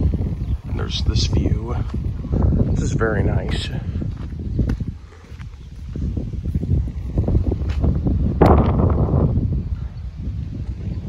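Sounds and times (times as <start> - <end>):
noisy rush: 0.0 - 5.2
wind buffeting microphone: 0.0 - 11.0.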